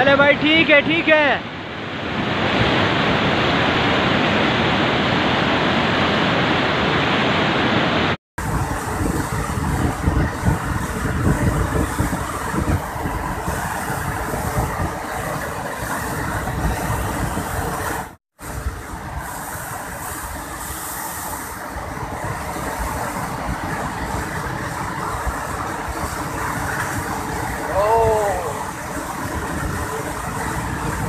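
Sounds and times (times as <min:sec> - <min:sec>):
river rushing roar: 0:00.0 - 0:31.0.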